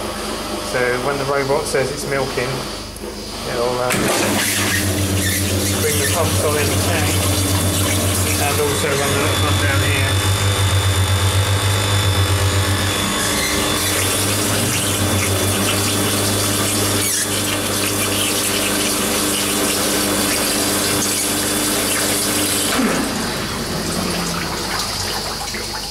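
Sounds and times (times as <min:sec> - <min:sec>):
pump motor hum: 0:00.0 - 0:25.9
water rushing through pipes: 0:03.9 - 0:10.1, 0:13.0 - 0:25.9.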